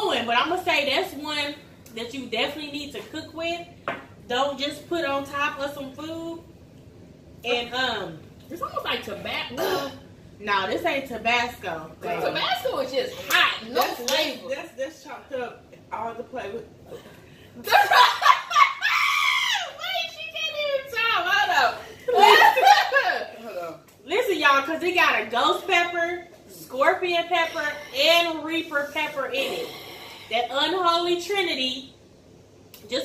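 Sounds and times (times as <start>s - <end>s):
woman talking: 0.0s - 6.5s, 7.4s - 16.7s, 19.7s - 32.0s
knock on table: 3.8s - 4.1s
woman laughing: 22.1s - 23.5s.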